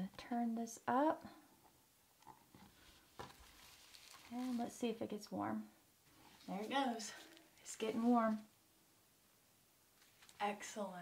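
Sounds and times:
plastic handling noise: 2.2 - 4.8.

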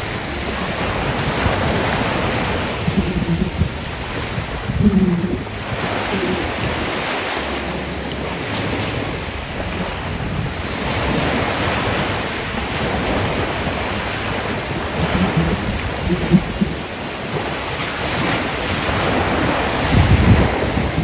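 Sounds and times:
waves washing onto sand: 0.0 - 21.0
wind buffeting microphone: 0.0 - 21.0.

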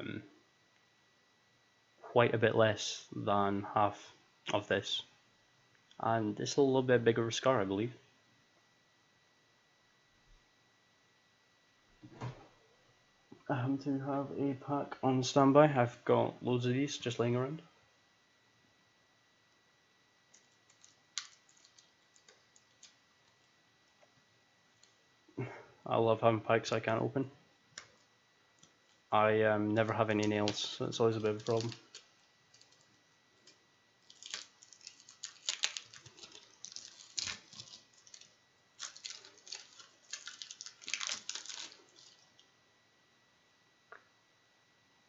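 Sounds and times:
plastic wrapping crinkling: 20.4 - 23.5, 29.8 - 42.5
fingers picking at a cigar pack: 30.1 - 42.2.

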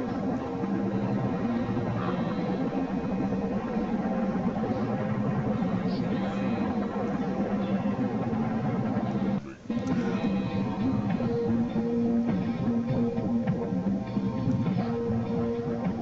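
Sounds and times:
background music with guitar: 0.0 - 16.0
man vocalizing without words: 9.4 - 10.7.

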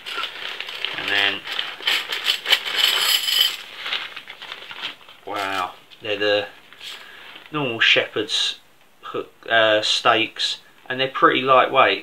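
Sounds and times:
metal tent pegs clinking: 0.0 - 3.7.

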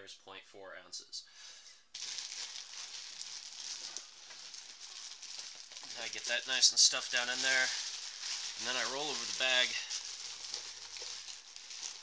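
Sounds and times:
plastic bag crinkling: 1.9 - 12.0.

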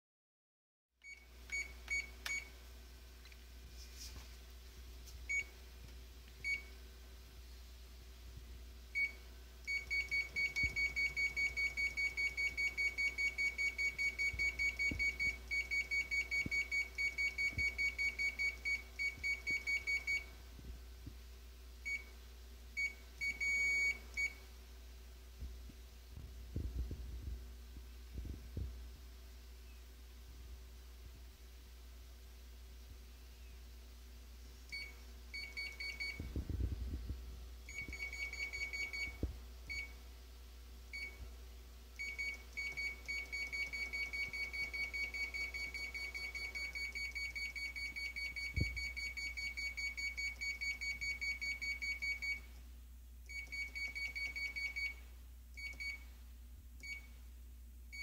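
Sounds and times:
copier keypad beeps: 1.0 - 2.5, 6.4 - 6.7, 9.0 - 20.3, 22.8 - 24.4, 34.7 - 36.3, 37.7 - 40.0, 41.0 - 41.2, 42.0 - 52.5, 53.3 - 55.0, 55.6 - 56.0
low thuds: 25.4 - 29.0, 36.1 - 37.2.

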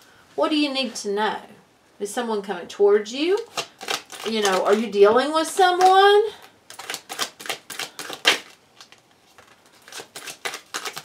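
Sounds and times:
cards being shuffled: 3.4 - 4.9, 5.6 - 11.0.

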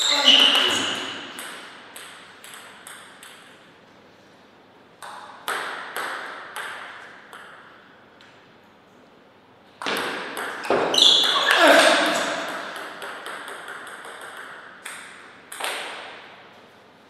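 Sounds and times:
table tennis ball bouncing: 0.1 - 3.7, 5.0 - 7.8, 9.8 - 16.3.

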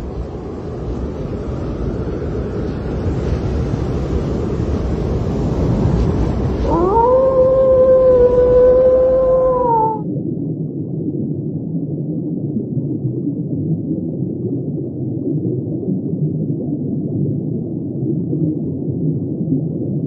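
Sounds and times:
muffled underwater ambience: 0.0 - 20.0
wolf-like howl: 6.6 - 10.1.

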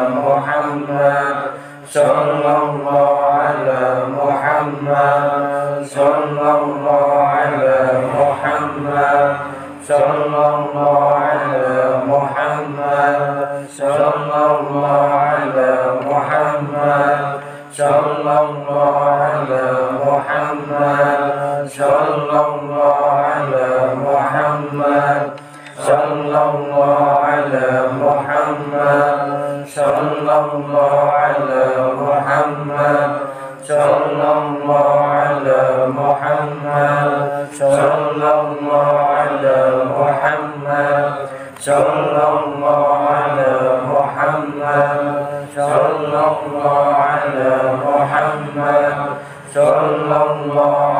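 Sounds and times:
men chanting together: 0.0 - 50.9.

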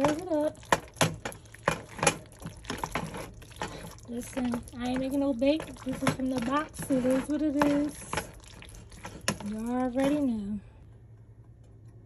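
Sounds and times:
spoon knocking and scraping pot: 0.0 - 10.3
wet squelching of stirred food: 0.0 - 11.2.

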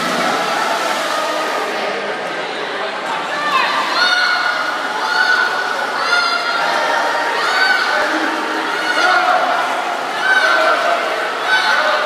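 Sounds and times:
swimmers splashing water: 0.0 - 2.4, 3.5 - 12.0.

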